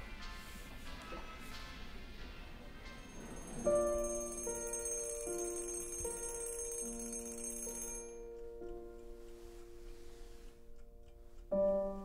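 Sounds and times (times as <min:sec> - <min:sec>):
slow piano music: 0:00.0 - 0:12.0
alarm clock bell ringing: 0:02.9 - 0:08.4.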